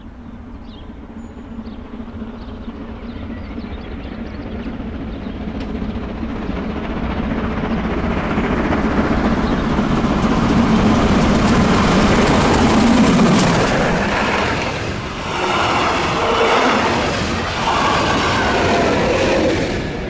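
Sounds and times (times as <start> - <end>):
steam locomotive approaching at speed: 0.0 - 20.0.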